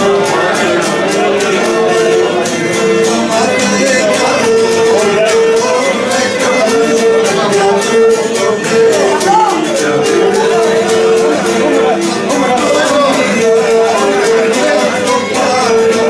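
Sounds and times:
bowed lyra melody: 0.0s - 16.0s
crowd chatter: 0.0s - 16.0s
strummed lute beat: 0.0s - 16.0s.

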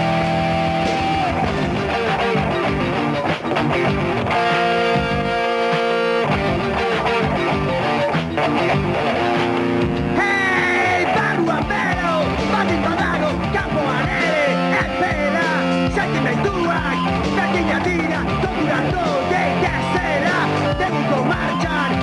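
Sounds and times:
rock music with electric guitar: 0.0s - 22.0s.

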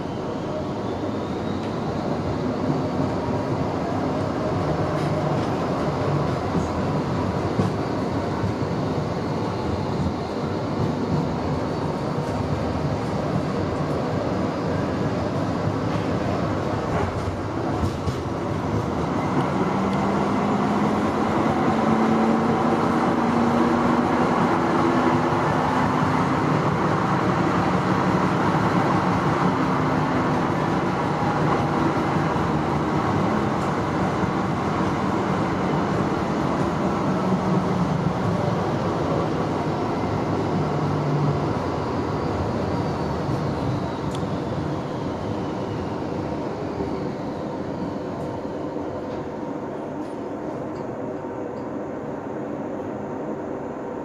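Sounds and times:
tram motor whine: 0.0s - 54.0s
tram wheels rumbling on rails: 0.0s - 54.0s.

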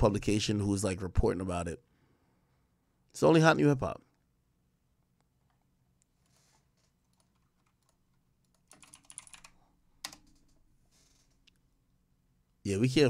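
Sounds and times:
computer keyboard typing: 6.2s - 10.6s.

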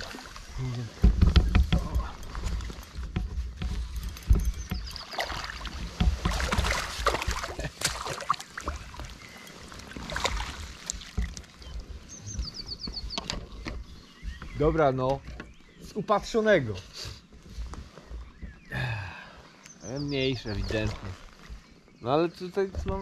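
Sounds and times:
water sloshing around boat: 0.0s - 23.0s
fish splashing at surface: 5.0s - 9.0s.

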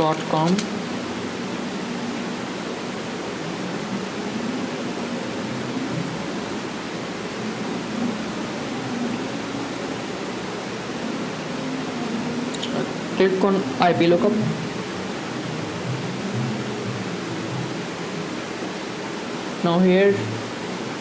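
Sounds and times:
faint low hum: 0.0s - 21.0s.

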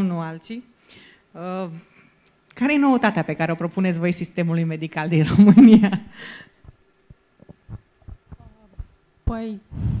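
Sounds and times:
microphone handling thumps: 6.6s - 10.0s.

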